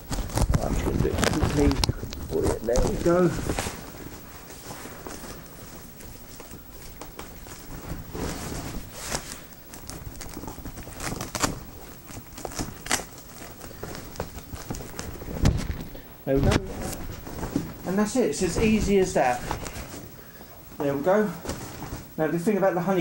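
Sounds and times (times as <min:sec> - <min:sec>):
fabric rustling and scuffing: 0:00.0 - 0:23.0.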